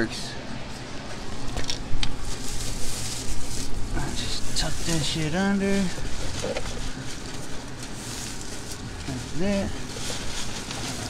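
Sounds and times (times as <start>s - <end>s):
low steady hum: 0.0s - 11.0s
plastic sheeting crinkling: 2.1s - 11.0s.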